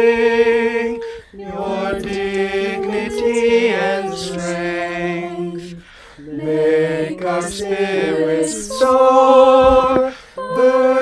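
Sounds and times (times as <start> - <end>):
a cappella group singing: 0.0 - 11.0.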